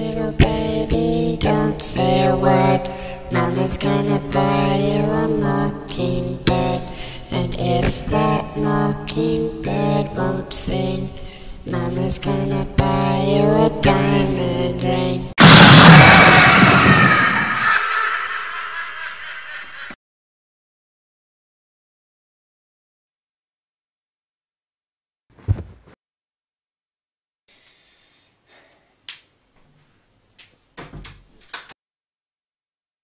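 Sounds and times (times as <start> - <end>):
cinematic boom hit: 15.4 - 17.7.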